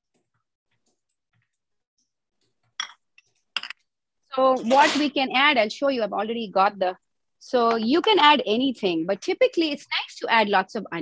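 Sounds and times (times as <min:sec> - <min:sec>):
kitchenware clinking and knocking: 0:02.6 - 0:03.9, 0:04.5 - 0:05.2.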